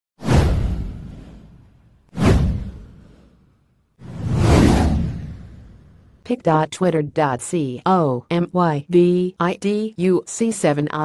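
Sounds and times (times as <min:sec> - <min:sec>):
whoosh with deep rumble: 0:00.2 - 0:06.2.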